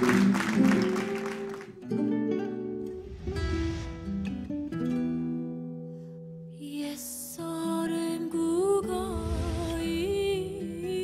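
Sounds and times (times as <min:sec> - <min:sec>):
audience applause: 0:00.0 - 0:01.8.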